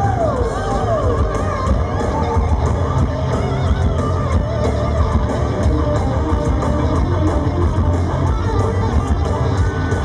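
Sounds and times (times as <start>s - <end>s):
electric guitar: 0.0s - 10.0s
rock band playing live: 0.0s - 10.0s.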